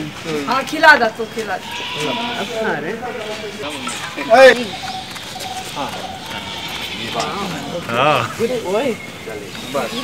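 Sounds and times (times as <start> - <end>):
people's voices: 0.0 - 10.0
goat bleating: 1.5 - 4.8, 5.7 - 8.4.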